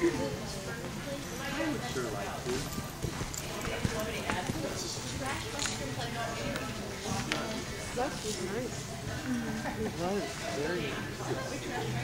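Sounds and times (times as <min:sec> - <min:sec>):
murmur of background voices: 0:00.0 - 0:12.0
horse hoofbeats on dirt: 0:02.4 - 0:05.8.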